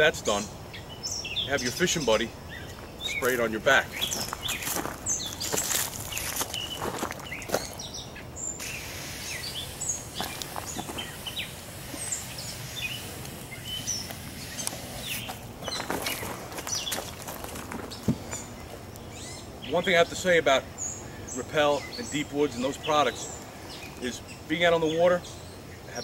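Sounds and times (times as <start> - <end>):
small birds chirping: 0.0 - 26.0
aerosol spray hisses: 8.6 - 16.2.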